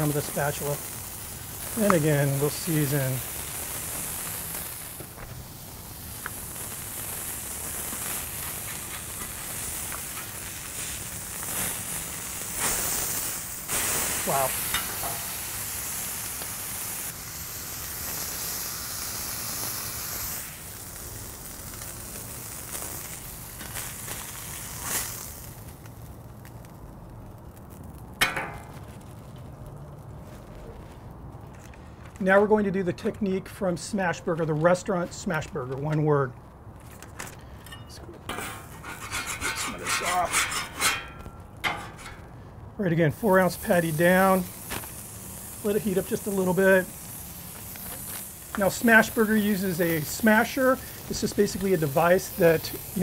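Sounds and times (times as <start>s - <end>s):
beef patty sizzling on griddle: 0.0s - 31.3s, 38.3s - 53.0s.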